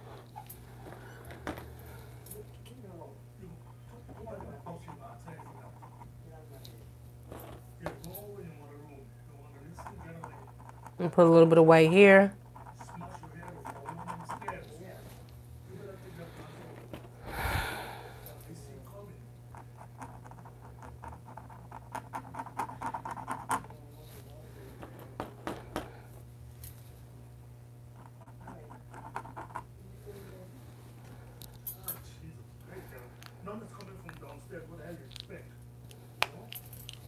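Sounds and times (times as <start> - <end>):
steady low hum: 0.0 - 37.0
paint marker scratching on paper: 4.2 - 6.1, 12.4 - 14.6.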